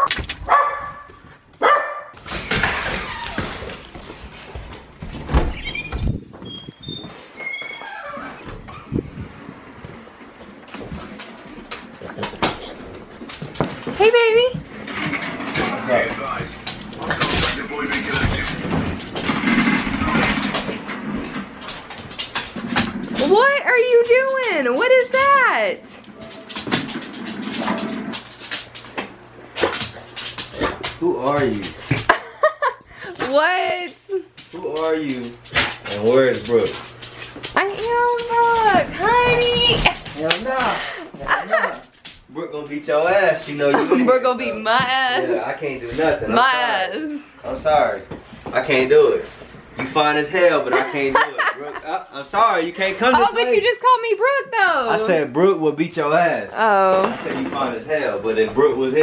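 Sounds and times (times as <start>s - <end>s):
footsteps: 0.0s - 42.4s, 43.1s - 50.2s.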